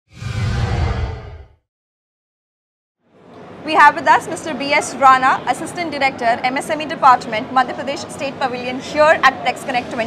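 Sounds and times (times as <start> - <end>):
whoosh with deep low rumble: 0.1 - 1.6.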